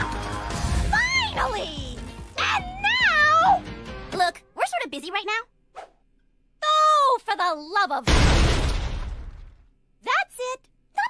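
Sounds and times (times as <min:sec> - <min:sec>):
background music: 0:00.0 - 0:04.6.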